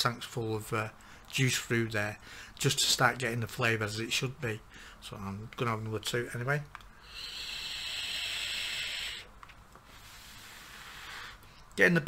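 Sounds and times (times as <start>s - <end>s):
faint exhale: 6.9s - 9.3s, 9.9s - 11.6s
vape hissing: 7.0s - 9.3s, 10.0s - 11.4s.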